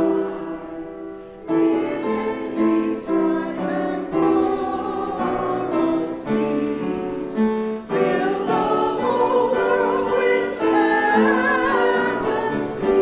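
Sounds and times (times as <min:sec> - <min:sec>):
group singing a hymn: 0:00.0 - 0:13.0.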